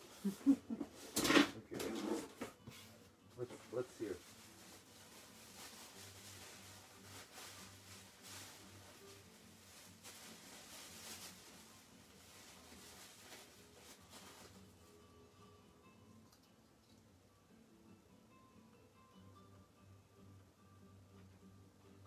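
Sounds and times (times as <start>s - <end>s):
faint background music: 0.0s - 22.0s
soft rustling: 2.0s - 14.8s.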